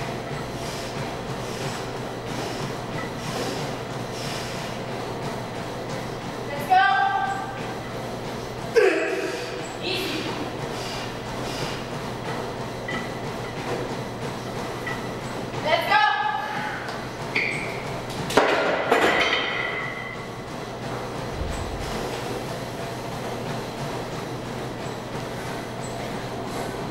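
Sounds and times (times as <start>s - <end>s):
low hum: 20.9s - 23.8s.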